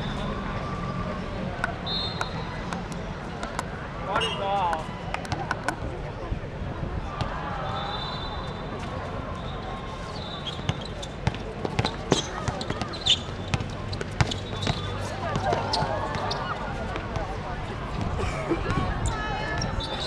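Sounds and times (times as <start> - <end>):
basketball bouncing on hard court: 10.7 - 16.3.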